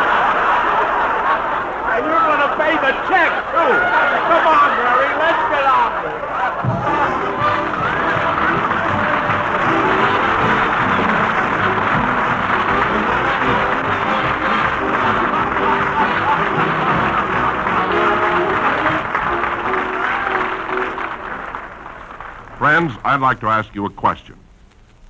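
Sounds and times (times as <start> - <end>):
audience applause: 0.0 - 23.3
orchestra playing: 6.7 - 21.6.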